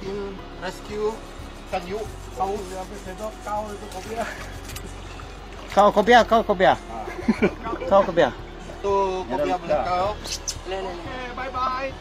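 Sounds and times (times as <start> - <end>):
people talking: 0.0 - 4.4.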